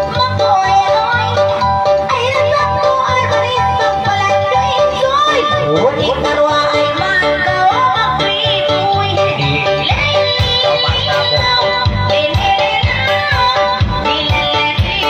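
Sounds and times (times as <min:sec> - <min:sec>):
woman singing into a microphone: 0:00.0 - 0:15.0
backing music with pulsing beat: 0:02.6 - 0:15.0.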